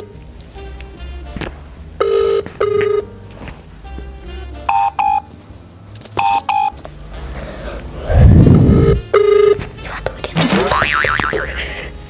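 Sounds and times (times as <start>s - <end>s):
phone call ringing beeps: 2.0s - 3.1s, 4.7s - 5.3s, 6.2s - 6.8s, 8.8s - 9.6s.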